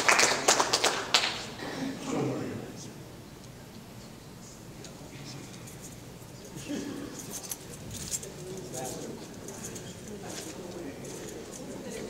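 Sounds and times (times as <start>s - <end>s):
low murmur of voices: 1.4s - 12.0s.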